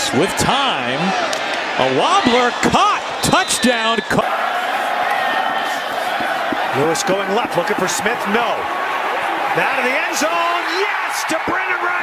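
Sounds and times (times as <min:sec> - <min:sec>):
stadium crowd noise: 0:00.0 - 0:12.0
broadcast audio: 0:05.2 - 0:12.0.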